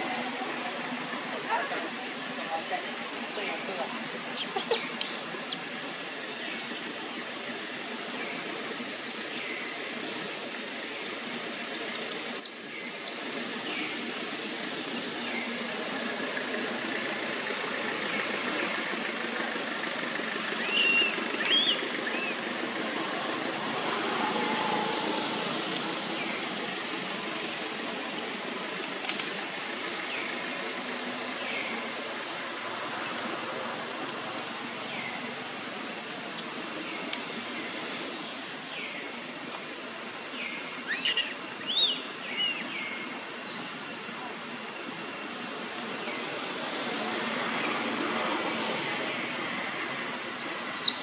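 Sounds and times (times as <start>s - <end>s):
steady background hiss: 0.0s - 51.0s
high-pitched bird chirps: 12.1s - 13.2s, 29.8s - 30.2s, 36.6s - 37.1s, 50.1s - 51.0s.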